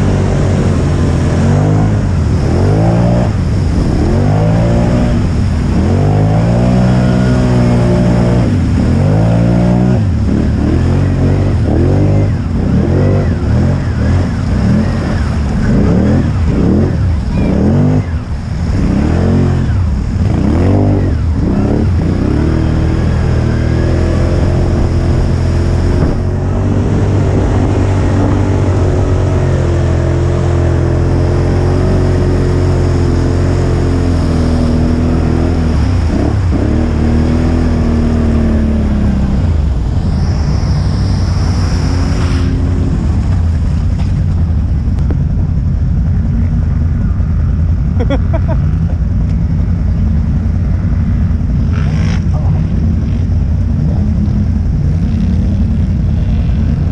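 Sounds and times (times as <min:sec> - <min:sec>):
atv engine revving hard: 0:00.0 - 0:39.4, 0:51.6 - 0:53.2.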